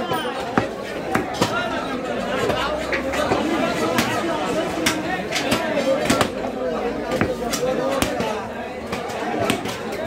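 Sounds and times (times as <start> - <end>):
people talking: 0.0 - 10.0
cleaver chopping meat on wood: 0.5 - 1.6, 7.0 - 9.8.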